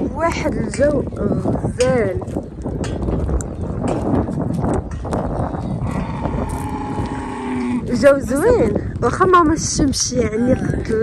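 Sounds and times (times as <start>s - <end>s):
farm animal long call: 5.8s - 7.9s.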